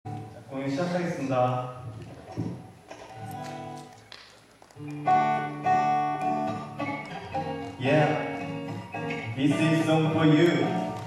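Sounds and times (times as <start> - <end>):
acoustic guitar plucked notes: 4.8 - 11.0
acoustic guitar strummed chords: 4.8 - 11.0.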